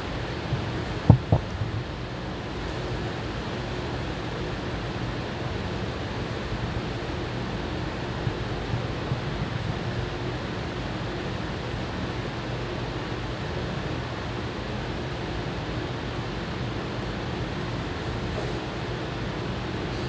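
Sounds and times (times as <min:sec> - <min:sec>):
background hiss: 0:02.6 - 0:04.5.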